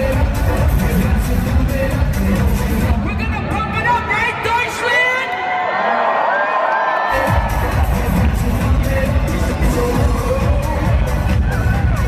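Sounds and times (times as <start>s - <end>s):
dance music over sound system: 0.0s - 5.3s, 7.1s - 12.0s
crowd cheering and whooping: 5.1s - 12.0s.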